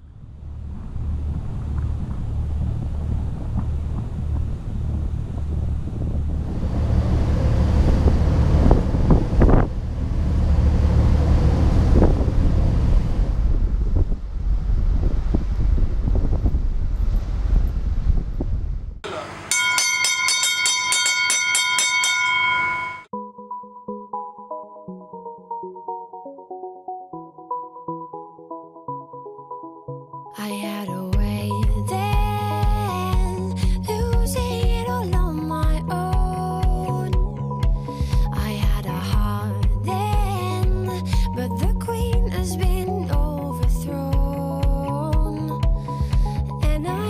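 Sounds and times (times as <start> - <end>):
boat engine rumble: 0.0 - 23.1, 31.2 - 47.0
wind buffeting microphone: 0.1 - 19.0
water wash: 0.6 - 18.1
electronic synth music with beat: 31.2 - 46.9.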